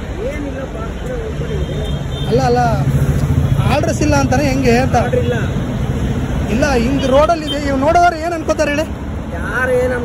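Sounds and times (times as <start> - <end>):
road traffic noise: 0.0 - 10.0
man talking: 2.3 - 5.6, 6.4 - 10.0.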